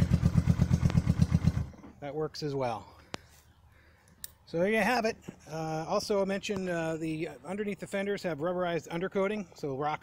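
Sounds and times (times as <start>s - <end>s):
motorcycle engine idling: 0.0s - 1.8s.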